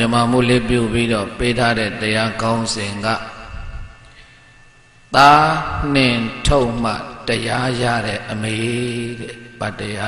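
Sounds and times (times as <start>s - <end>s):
man preaching over microphone: 0.0s - 3.5s, 5.1s - 10.0s.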